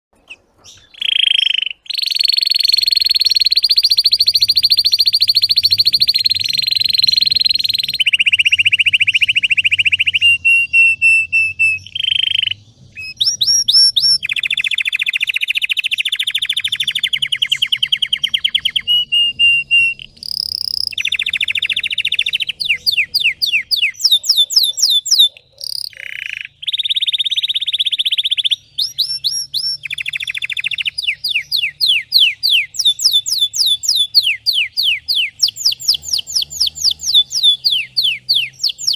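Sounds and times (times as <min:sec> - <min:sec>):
canary singing trills: 0:00.2 - 0:38.9.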